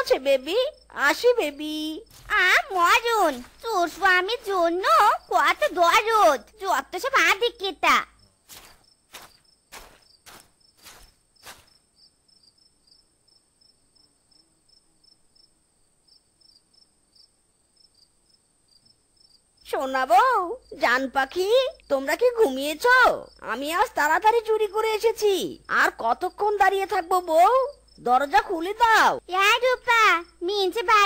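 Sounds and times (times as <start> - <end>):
person speaking: 0.0 - 11.6
crickets chirping: 0.0 - 31.0.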